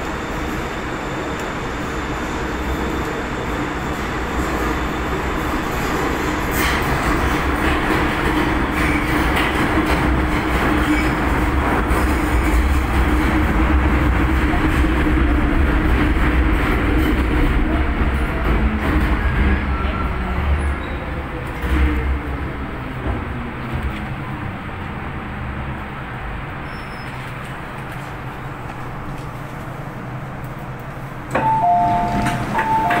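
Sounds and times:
train wheels rumbling on track: 0.0s - 33.0s
two-note door chime: 31.4s - 33.0s.

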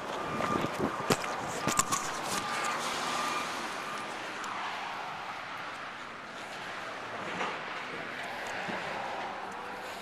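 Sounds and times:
road traffic passing: 0.0s - 10.0s.

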